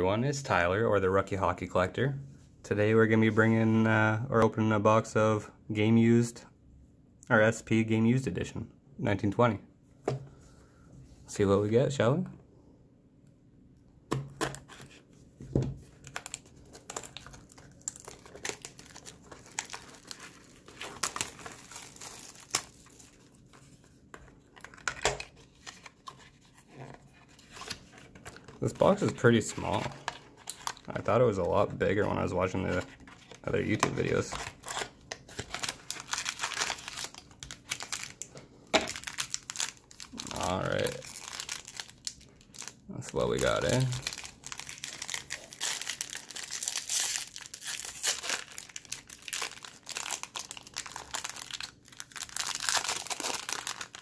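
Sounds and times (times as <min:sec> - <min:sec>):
plastic shrink-wrap crinkling and tearing: 0:15.8 - 0:54.0.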